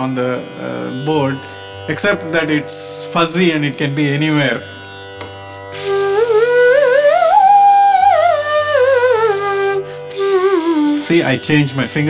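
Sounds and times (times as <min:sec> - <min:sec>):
slide flute melody: 0:05.7 - 0:12.0.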